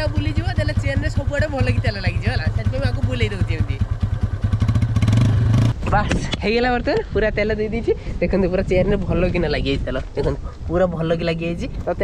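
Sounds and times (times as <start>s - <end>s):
motorcycle engine revving: 0.0s - 6.1s.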